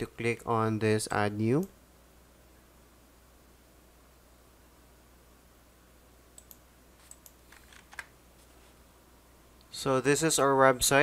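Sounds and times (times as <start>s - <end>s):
keyboard and mouse clicks: 6.4s - 8.1s.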